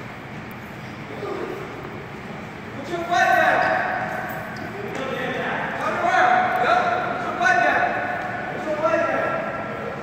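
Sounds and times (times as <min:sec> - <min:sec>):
voices calling out in a gymnasium: 0:00.0 - 0:10.0.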